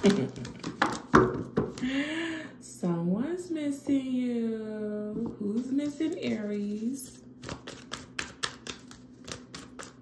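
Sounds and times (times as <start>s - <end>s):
cards being shuffled: 0.0s - 1.8s, 7.4s - 10.0s.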